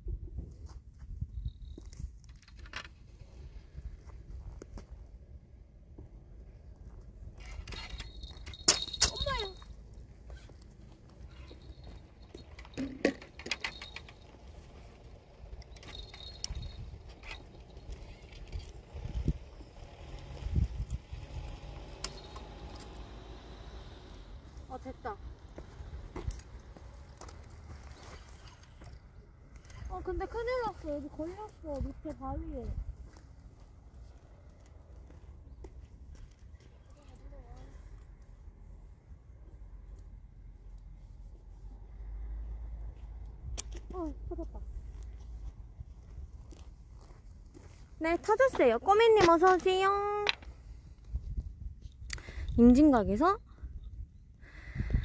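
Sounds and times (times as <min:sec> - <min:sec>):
wind rumble on microphone: 0:00.0 - 0:02.3, 0:16.4 - 0:21.8, 0:29.0 - 0:33.2, 0:50.1 - 0:55.0
fishing tackle clicking and clinking: 0:07.5 - 0:09.8, 0:11.3 - 0:14.6, 0:15.5 - 0:18.8.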